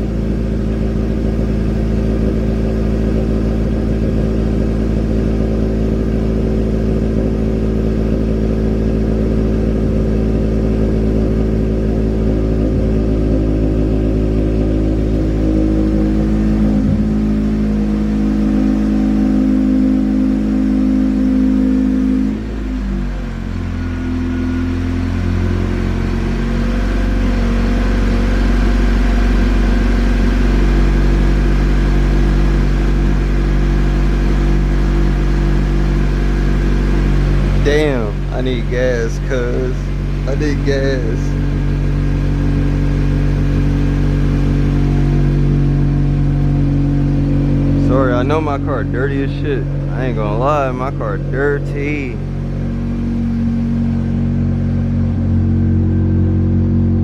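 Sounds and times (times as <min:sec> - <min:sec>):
car engine idling at exhaust: 0:00.0 - 0:57.0
deep hum inside car cabin: 0:00.0 - 0:57.0.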